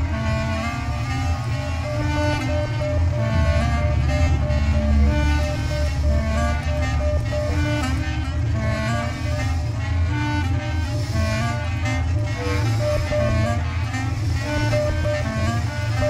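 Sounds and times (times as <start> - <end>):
improvised clarinet bass and drums: 0.0 - 16.0
low electronic rumble: 0.0 - 16.0.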